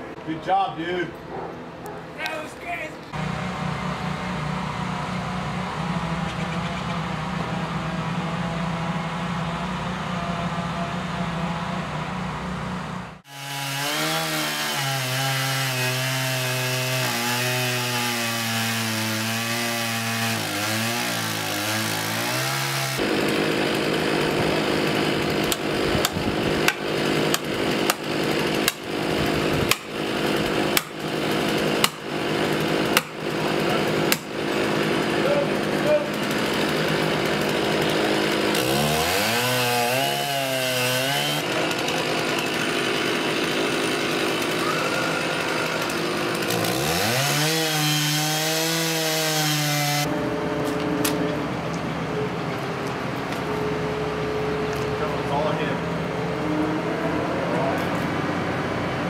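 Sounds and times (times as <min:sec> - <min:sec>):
chainsaw sawing wood: 0:00.0 - 0:56.6
chainsaw engine running: 0:03.1 - 0:56.6
hammer striking a wedge: 0:29.7 - 0:29.9, 0:31.8 - 0:32.0.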